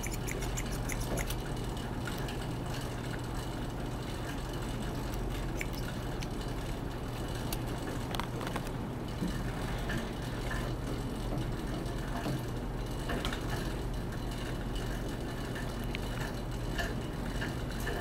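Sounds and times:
exercise bike flywheel hum: 0:00.0 - 0:18.0.

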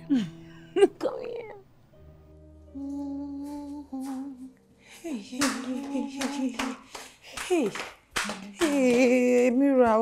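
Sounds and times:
woman humming: 0:00.0 - 0:01.6, 0:02.5 - 0:06.9.

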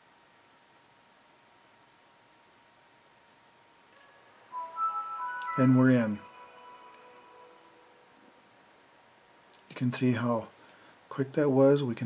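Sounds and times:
computer startup chime: 0:04.3 - 0:08.7.

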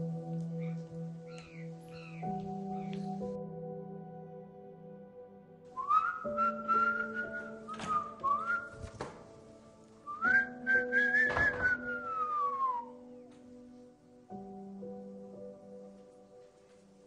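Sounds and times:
background music: 0:00.0 - 0:17.0
person whistling sliding notes: 0:05.8 - 0:09.0, 0:10.1 - 0:13.0.

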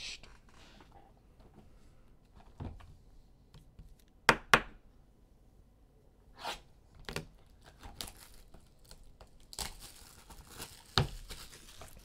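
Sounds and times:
plastic wrap crinkling and tearing: 0:07.5 - 0:12.0.

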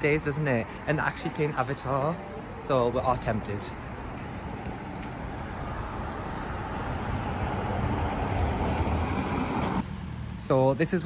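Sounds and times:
tyre noise on wet road: 0:03.4 - 0:09.8.

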